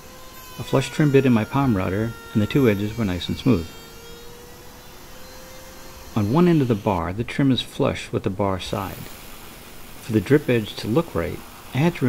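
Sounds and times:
router whining: 0:00.0 - 0:12.0.

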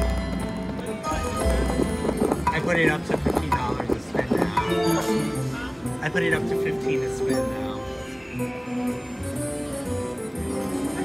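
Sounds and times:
slot machine music and effects: 0:00.0 - 0:11.0.

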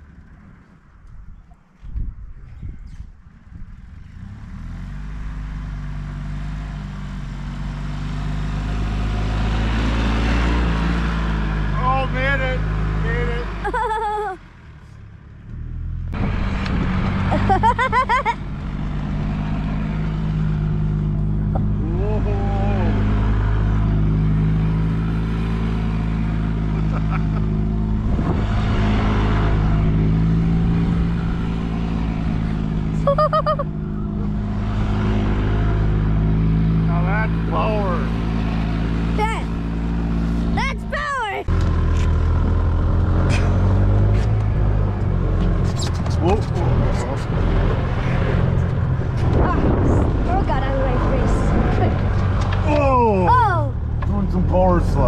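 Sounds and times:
golf cart engine revving: 0:04.2 - 0:14.1, 0:16.1 - 0:55.0.

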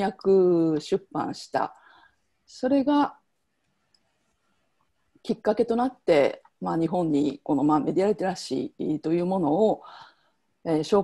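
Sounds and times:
woman's voice: 0:00.0 - 0:01.8, 0:02.5 - 0:03.2, 0:05.3 - 0:10.0, 0:10.7 - 0:11.0.

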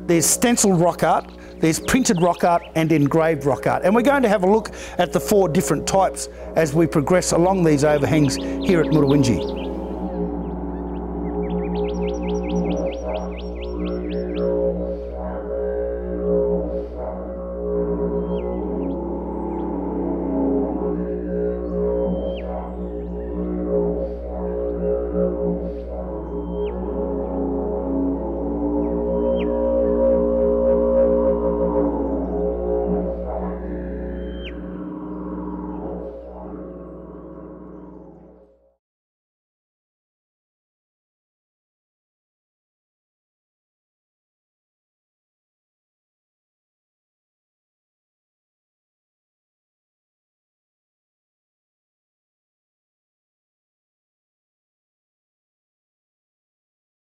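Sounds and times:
didgeridoo drone: 0:00.0 - 0:38.7.

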